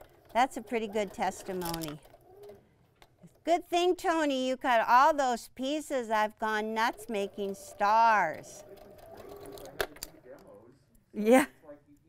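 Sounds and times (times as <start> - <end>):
sewing machine stitching: 0.0 - 2.6, 6.4 - 10.1.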